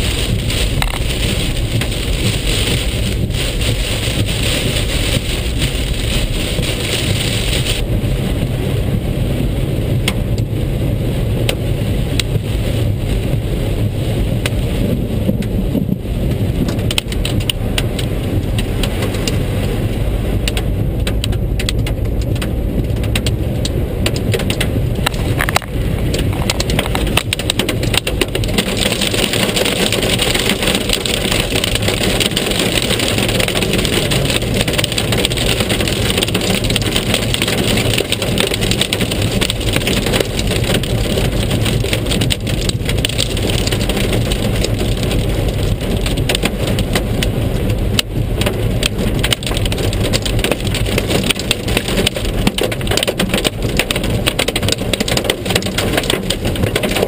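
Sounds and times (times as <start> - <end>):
car engine rumble: 0.0 - 57.0
heavy rain on car roof: 0.0 - 57.0
tyres on wet road: 0.0 - 57.0.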